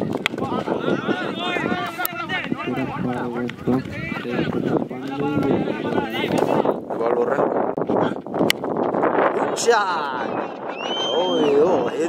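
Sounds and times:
spectators' voices: 0:00.0 - 0:06.9
wind on microphone: 0:00.0 - 0:12.0.

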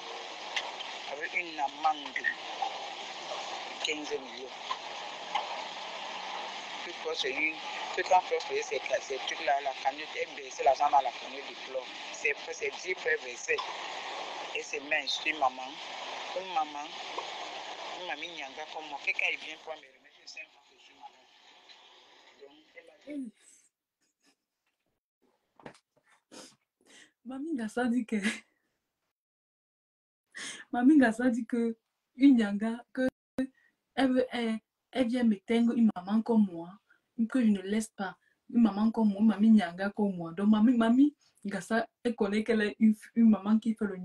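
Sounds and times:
background hiss: 0:00.0 - 0:23.3.

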